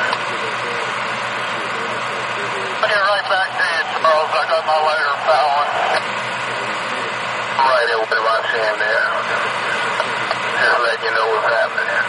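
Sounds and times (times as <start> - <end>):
radio scanner static: 0.0 - 12.0
voice over radio: 0.0 - 12.0.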